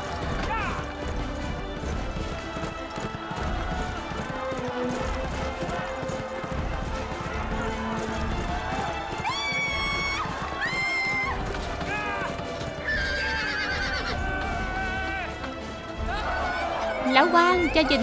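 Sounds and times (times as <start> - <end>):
background music score: 0.0 - 18.0
crowd cheering: 0.0 - 18.0.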